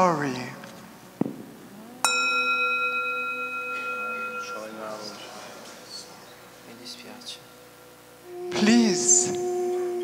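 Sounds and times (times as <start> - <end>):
bell ringing: 2.0 - 5.6.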